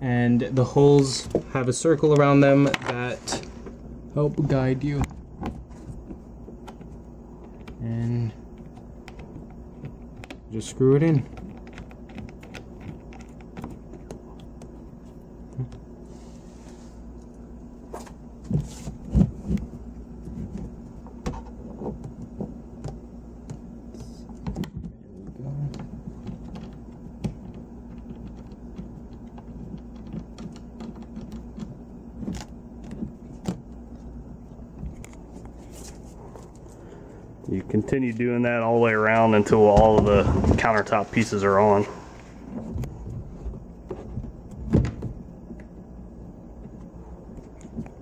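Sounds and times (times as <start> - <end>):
steady low hum: 0.0 - 48.0.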